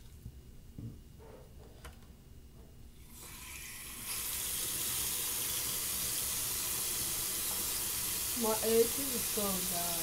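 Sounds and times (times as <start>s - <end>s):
tap water running into sink: 3.2s - 10.0s.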